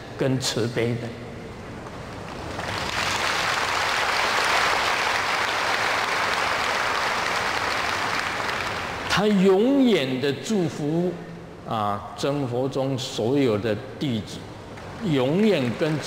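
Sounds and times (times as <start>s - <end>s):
audience applauding: 2.2s - 9.0s, 14.8s - 16.0s.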